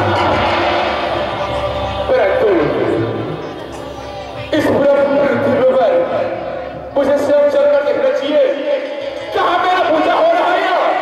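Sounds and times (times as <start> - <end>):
heavy low drumming: 0.0 - 4.8.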